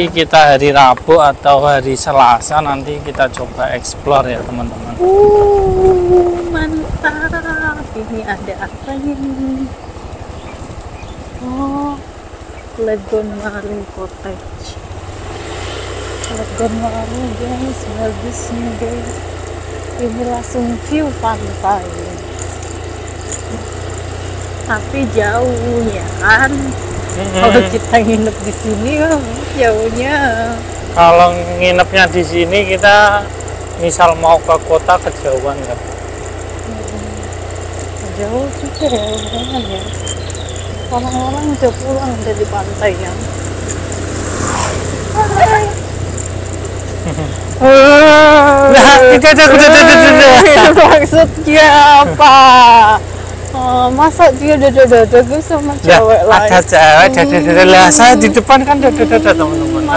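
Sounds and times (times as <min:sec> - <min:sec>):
motorbike engine rumbling: 0:00.0 - 0:59.9
scooter passing by: 0:00.0 - 0:59.9
high-pitched insect buzz: 0:14.6 - 0:59.9
person speaking: 0:24.7 - 0:33.2, 0:45.1 - 0:45.8, 0:46.9 - 0:59.9.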